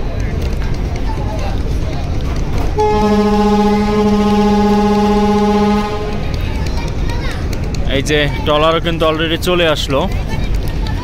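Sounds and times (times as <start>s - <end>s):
ship's horn blast: 2.8s - 6.4s.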